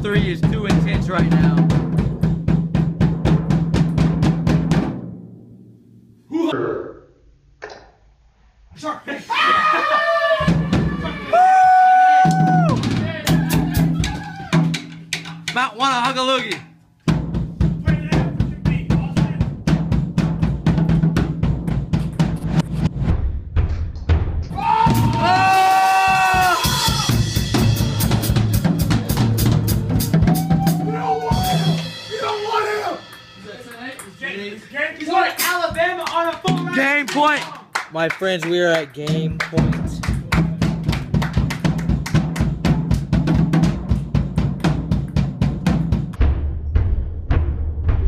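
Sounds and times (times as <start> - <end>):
fast drum kit strikes: 0.0 - 5.6, 10.4 - 37.3, 39.2 - 48.0
person shouting: 9.2 - 14.6, 24.5 - 27.2, 30.3 - 33.1.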